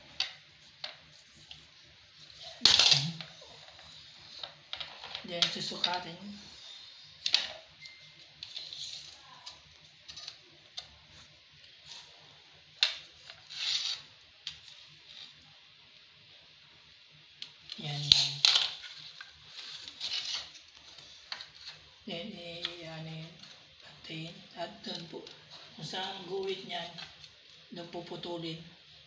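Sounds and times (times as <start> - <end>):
ceramic tiles clinking and scraping: 17.8 - 21.8.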